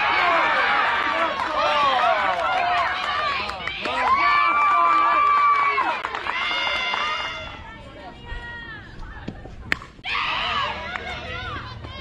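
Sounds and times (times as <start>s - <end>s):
high-pitched voices cheering: 0.0s - 7.7s.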